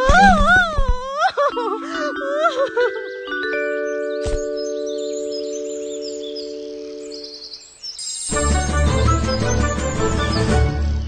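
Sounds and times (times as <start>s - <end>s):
woman wailing and whimpering: 0.0s - 3.3s
background music with held notes: 1.3s - 11.0s.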